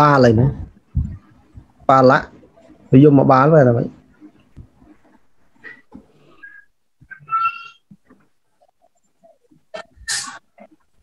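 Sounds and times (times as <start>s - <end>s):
short high-pitched animal call: 6.4s - 7.8s.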